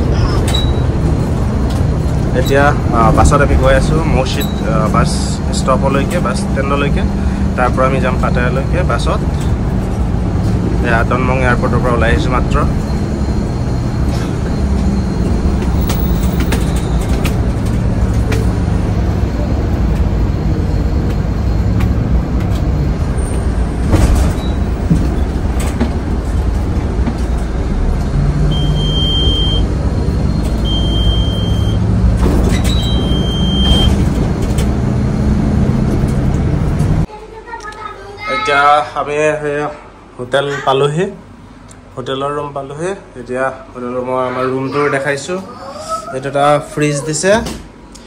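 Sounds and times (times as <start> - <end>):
bus engine drone: 0.0 - 48.0
knocks and rattles: 21.0 - 28.2
short high beeps: 28.5 - 29.7.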